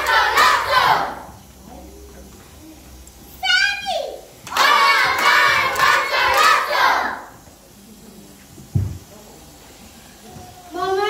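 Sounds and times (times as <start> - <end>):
young children singing in unison: 0.0 - 1.3, 4.5 - 7.3.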